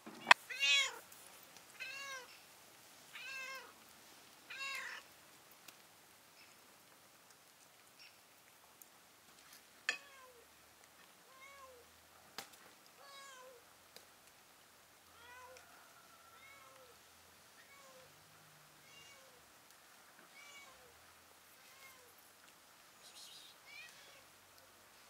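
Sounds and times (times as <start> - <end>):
cat meowing: 0.2 - 1.0, 1.8 - 2.3, 3.2 - 3.7, 4.5 - 5.0, 18.8 - 19.4, 20.3 - 20.9, 21.6 - 22.1, 23.6 - 24.3.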